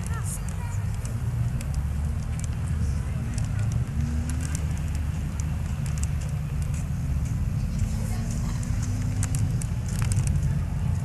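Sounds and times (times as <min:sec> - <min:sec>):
faint crackles: 0:00.0 - 0:11.0
low outdoor rumble: 0:00.0 - 0:11.0.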